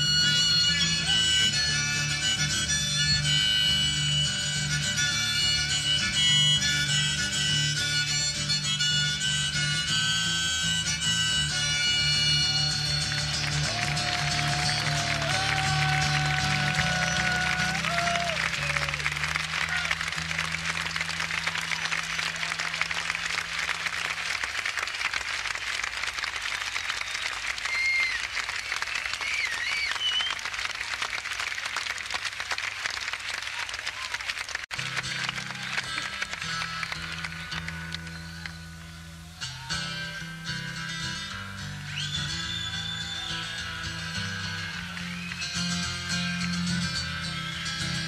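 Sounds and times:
harmonica: 0.0 - 20.3, 40.2 - 48.0
band playing: 0.0 - 24.8, 34.7 - 40.6
whistles from crowd: 11.9 - 19.0, 26.6 - 30.6, 41.8 - 43.7, 44.7 - 45.9
audience applauding and cheering: 12.1 - 38.5.

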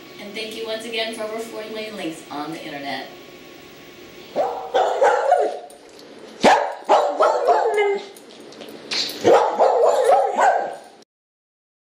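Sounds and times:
dog barking and yipping: 4.4 - 5.8, 6.4 - 8.2, 9.2 - 11.0.

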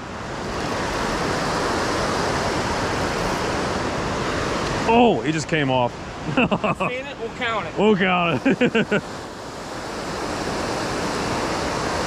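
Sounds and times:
river water rushing: 0.0 - 12.0
wind: 0.0 - 12.0.

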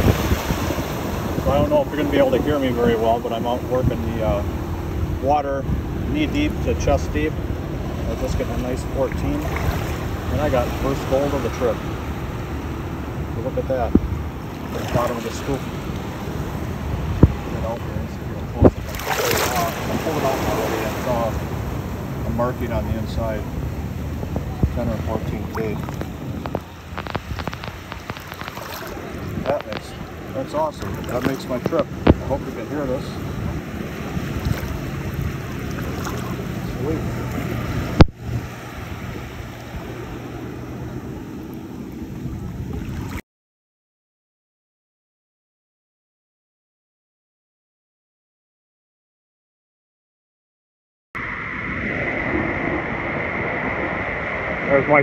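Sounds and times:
rumble of waves: 0.0 - 43.2, 51.2 - 55.0
surf washing on beach: 0.0 - 43.2, 51.2 - 55.0
wind: 0.0 - 43.2, 51.2 - 55.0
water splashing and dripping: 18.6 - 22.2, 24.2 - 32.6, 33.8 - 38.6.

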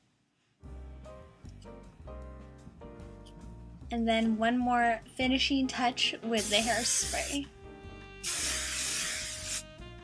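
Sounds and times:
soft background music: 0.6 - 10.0
hairspray can spraying: 6.4 - 7.5, 8.2 - 9.7.

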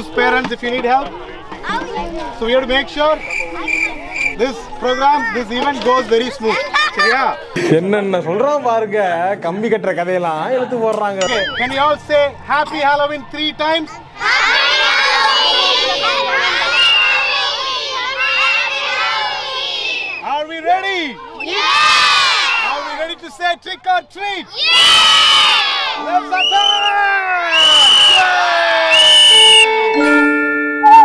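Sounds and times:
high-pitched screams: 11.2 - 11.8, 24.6 - 29.7
children shouting together: 13.9 - 20.2, 21.3 - 23.0, 24.5 - 26.2
background music: 29.4 - 31.0.

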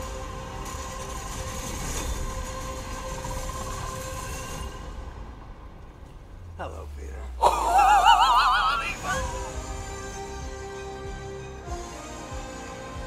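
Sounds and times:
deep steady rumble: 2.6 - 11.2.

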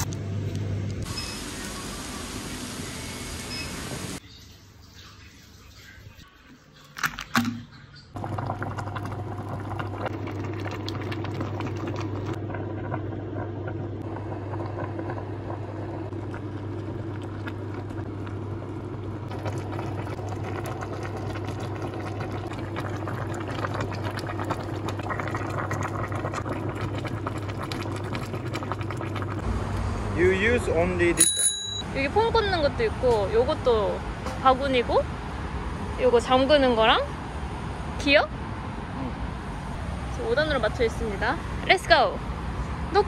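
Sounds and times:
stew bubbling in a pan: 8.1 - 29.5
low hum: 8.2 - 30.2.

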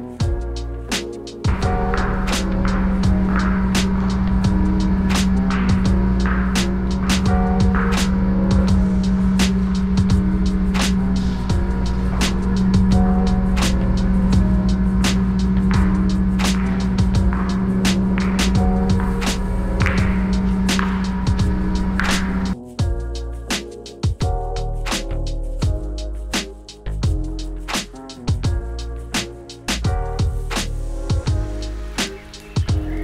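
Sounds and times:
percussion hits: 0.2 - 33.0
held bass note: 1.5 - 22.6.

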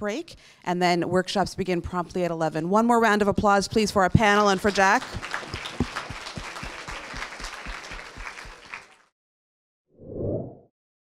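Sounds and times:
audience applauding: 4.4 - 9.1.

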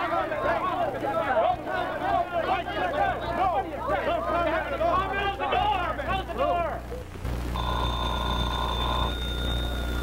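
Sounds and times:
low hum: 6.2 - 10.0
telephone ringing: 7.6 - 10.0.

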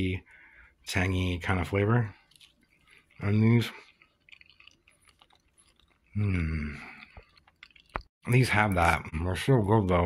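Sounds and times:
faint chewing: 1.6 - 8.1.

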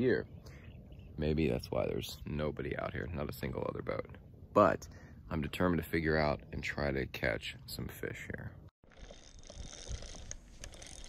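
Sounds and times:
fishing reel clicking and whirring: 8.9 - 11.0.

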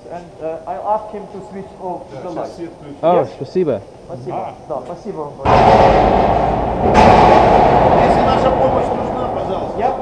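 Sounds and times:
heavy booming thuds with echo: 5.5 - 10.0.

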